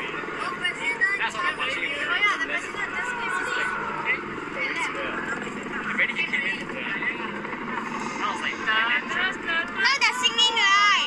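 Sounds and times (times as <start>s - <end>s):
helicopters droning: 0.0s - 11.0s
voices talking: 0.0s - 11.0s.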